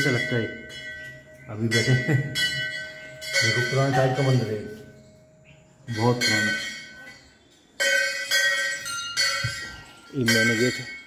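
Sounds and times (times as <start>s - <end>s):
metal temple bell ringing: 0.0s - 11.0s.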